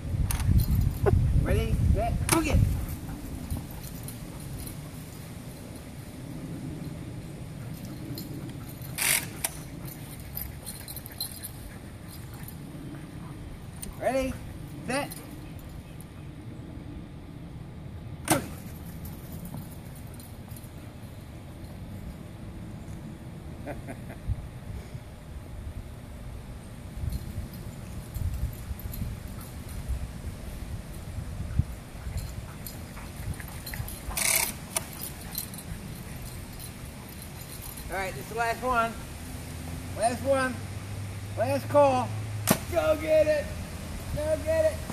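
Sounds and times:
low steady rumble: 0.0s - 44.9s
dog collar tags jingling: 0.3s - 1.3s, 2.2s - 16.4s, 18.5s - 22.3s, 26.9s - 39.0s.

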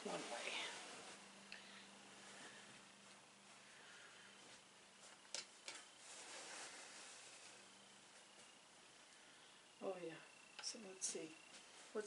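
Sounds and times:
fabric rustling: 0.0s - 9.4s.

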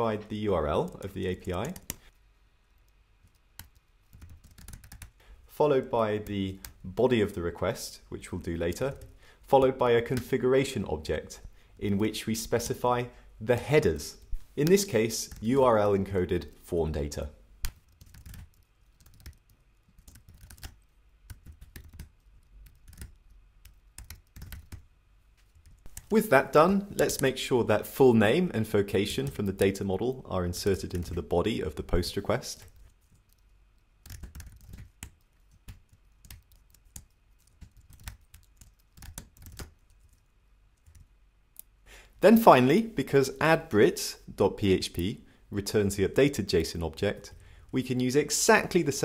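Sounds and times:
computer keyboard typing: 0.8s - 2.1s, 2.8s - 5.2s, 17.6s - 24.8s, 32.6s - 41.1s.

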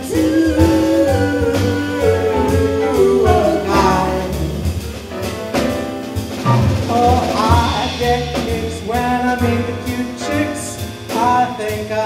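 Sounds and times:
person singing: 0.0s - 4.7s, 6.9s - 12.0s
drums: 0.0s - 12.0s
piano: 0.0s - 12.0s
upright bass: 0.0s - 12.0s.

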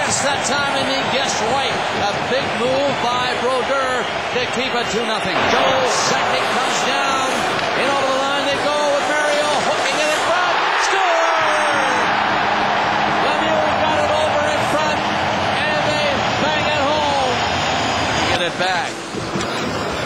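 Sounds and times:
crowd cheering: 0.0s - 20.0s.

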